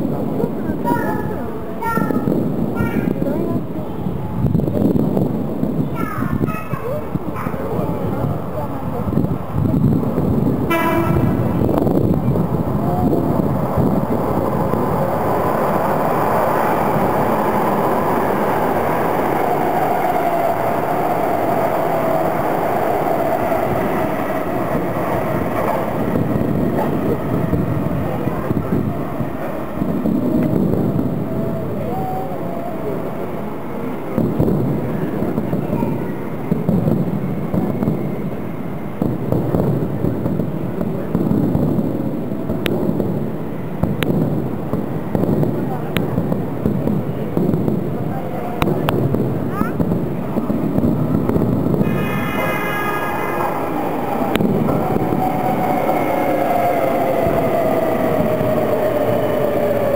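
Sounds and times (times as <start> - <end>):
falling whine of slowing train: 0.0 - 59.9
train running: 0.0 - 59.9
firework bursts: 0.3 - 57.4
background voices: 11.4 - 36.5.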